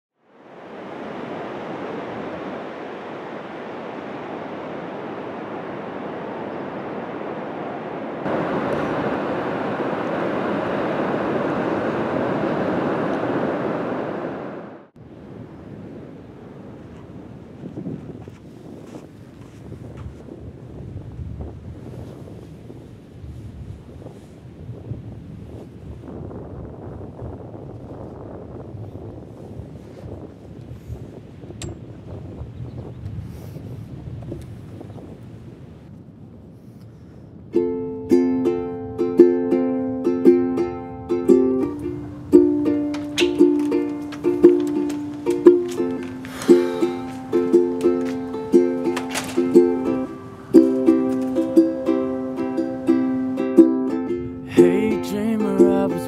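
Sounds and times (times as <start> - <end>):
ocean surf rushing: 0.2 - 17.4, 37.8 - 56.0
wind buffeting microphone: 0.4 - 56.0.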